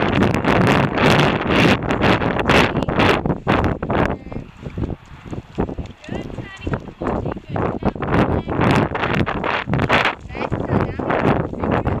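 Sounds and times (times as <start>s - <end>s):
pony hoofbeats on sand: 0.0s - 12.0s
wind buffeting microphone: 0.0s - 12.0s.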